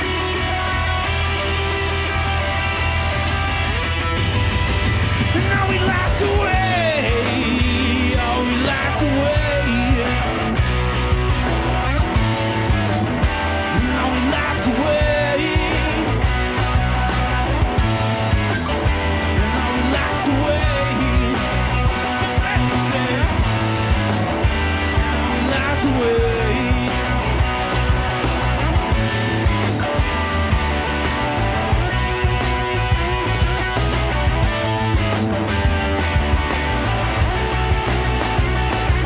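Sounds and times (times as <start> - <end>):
bass guitar: 0.0 - 39.0
drums: 0.0 - 39.0
electric guitar: 0.0 - 39.0
man singing: 5.3 - 10.6, 13.5 - 16.7, 19.3 - 24.0, 25.0 - 27.5.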